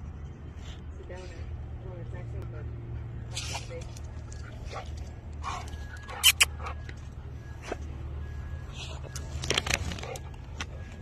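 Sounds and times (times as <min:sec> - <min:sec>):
dog whining: 0:05.4 - 0:06.6.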